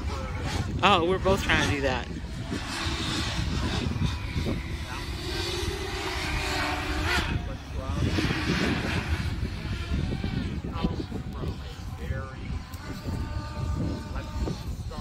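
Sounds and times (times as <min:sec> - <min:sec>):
drone propellers whirring: 0:00.0 - 0:15.0.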